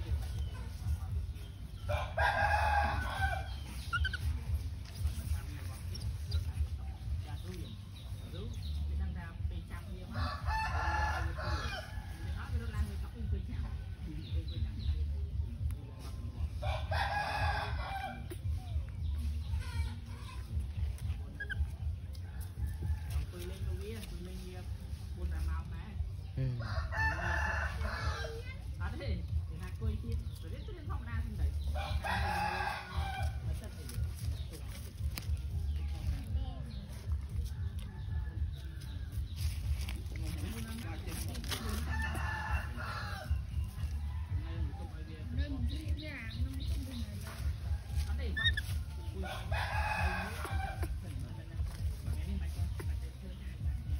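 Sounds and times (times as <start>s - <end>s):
steady low rumble: 0.0s - 27.0s, 27.6s - 53.9s.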